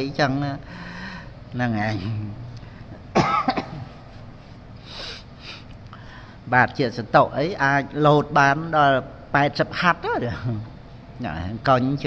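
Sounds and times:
man coughing into handkerchief: 3.1 - 4.3.

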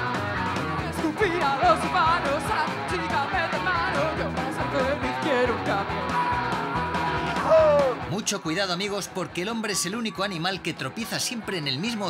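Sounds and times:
electric guitar: 0.0 - 8.2
steady drum beat: 0.4 - 8.1
person singing: 0.7 - 8.0.

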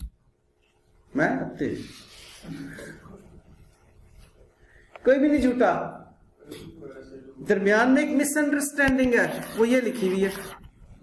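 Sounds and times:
soft rubbing and scraping: 1.7 - 4.6, 9.1 - 11.0.

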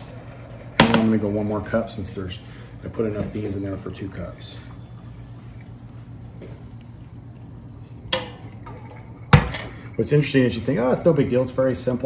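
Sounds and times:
faint high whistle: 3.3 - 7.6.

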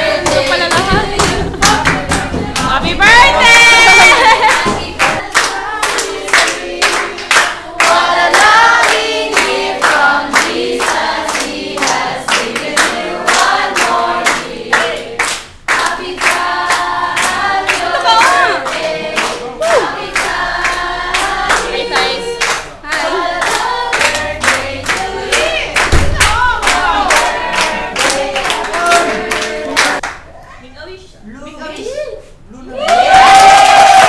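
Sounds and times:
group of voices singing: 0.0 - 30.1
hand clapping: 0.2 - 3.0, 4.4 - 19.4.

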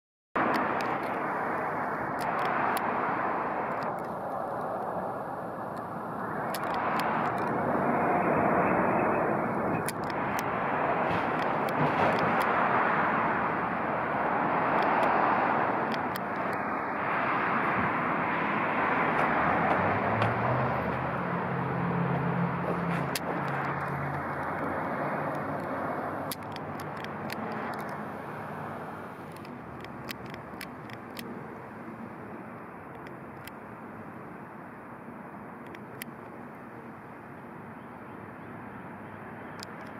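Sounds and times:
car road and engine noise: 0.4 - 39.9.

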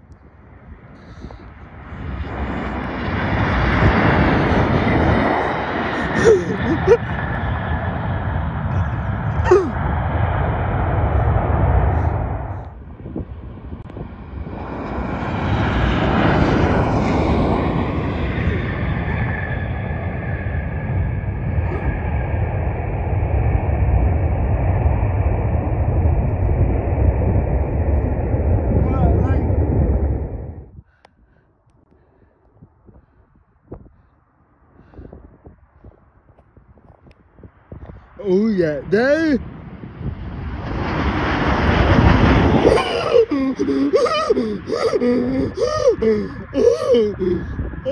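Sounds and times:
jet engines roaring with whine: 0.0 - 30.8, 31.7 - 47.9.

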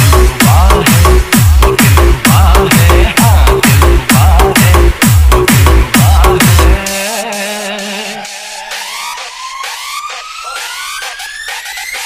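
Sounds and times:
rising siren-like synth tone: 8.2 - 11.7.

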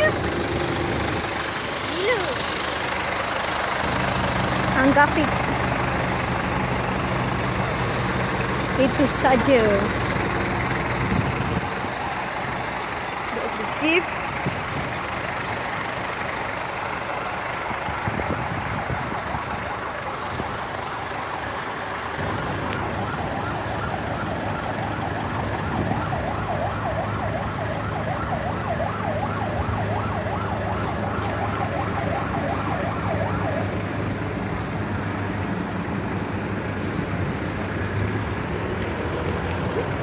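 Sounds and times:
diesel engines idling: 0.0 - 40.0.

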